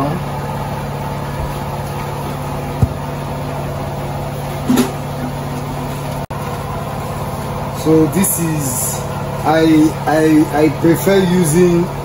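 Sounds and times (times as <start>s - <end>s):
motor humming: 0.0s - 10.7s.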